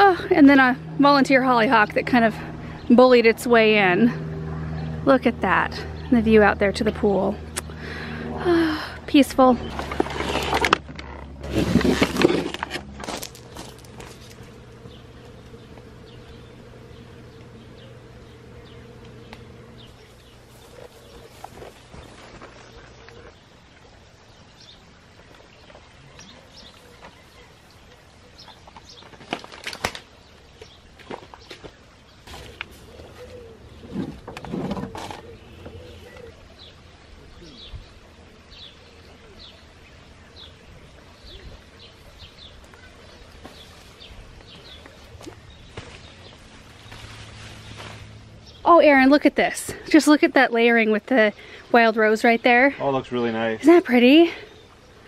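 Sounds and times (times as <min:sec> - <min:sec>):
steady low hum: 0:00.0 - 0:29.1, 0:30.2 - 0:55.0
small birds chirping: 0:13.2 - 0:29.5, 0:30.1 - 0:55.0.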